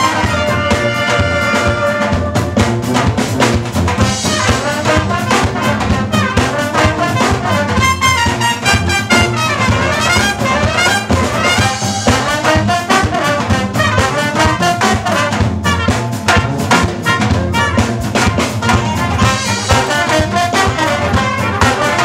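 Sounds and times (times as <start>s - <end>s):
brass band playing: 0.0s - 22.0s
steady drum strokes: 0.0s - 22.0s.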